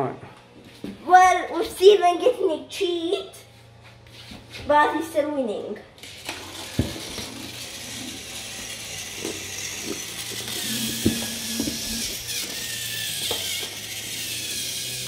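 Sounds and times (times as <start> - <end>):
toy train motors whirring: 6.0 - 15.0.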